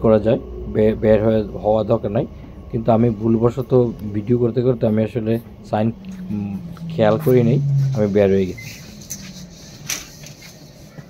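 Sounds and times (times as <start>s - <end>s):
train carriage low hum: 0.0s - 11.0s.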